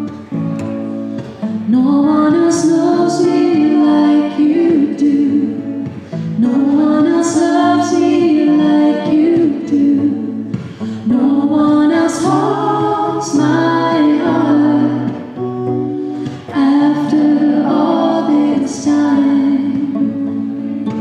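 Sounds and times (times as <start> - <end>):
woman singing: 1.5 - 15.4, 16.2 - 20.7.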